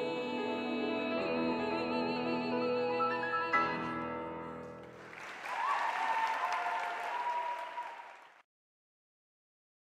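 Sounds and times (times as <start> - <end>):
audience applauding: 4.7 - 8.4
crowd cheering: 4.8 - 8.4.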